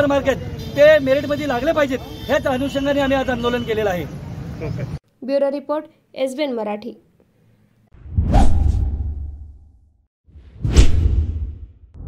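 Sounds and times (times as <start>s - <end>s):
whoosh sound effect: 8.0s - 9.7s, 10.4s - 11.7s.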